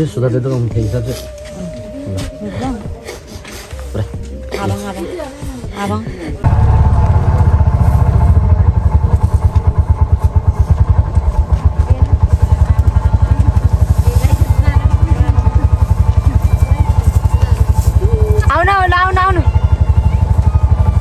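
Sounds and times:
faint voices: 0.6 - 21.0
engine idling: 5.6 - 21.0.

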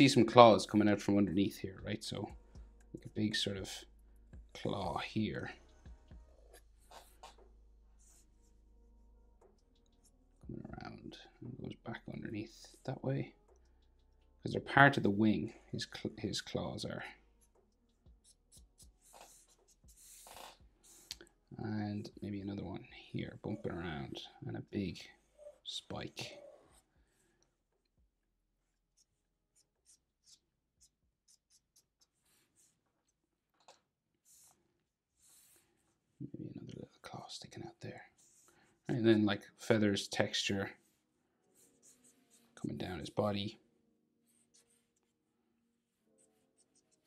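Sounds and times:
marker scratching on paper: 6.4 - 8.6, 17.3 - 21.2, 28.6 - 36.2, 38.2 - 38.8, 40.2 - 43.2, 45.9 - 47.0
person speaking: 21.5 - 26.6.

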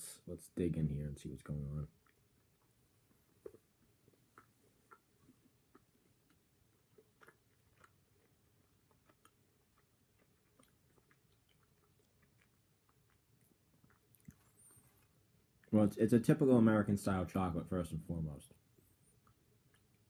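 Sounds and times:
chewing chocolate: 1.8 - 15.9, 19.1 - 20.0.

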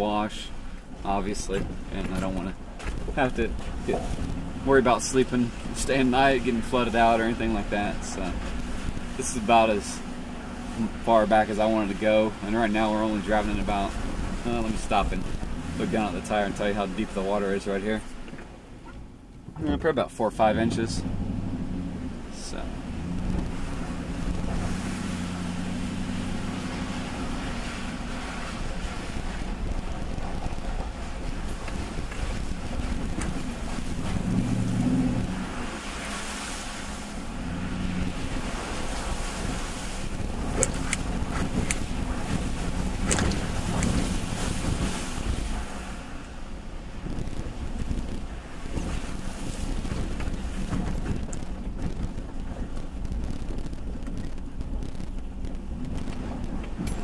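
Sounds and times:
low engine hum: 0.0 - 57.0
tires through water and gravel: 0.0 - 57.0
sharp clicks: 43.0 - 44.0.

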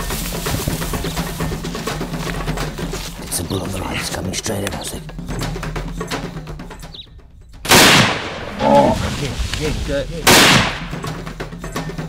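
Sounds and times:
loud rifle shot: 7.7 - 8.5, 10.3 - 11.0.

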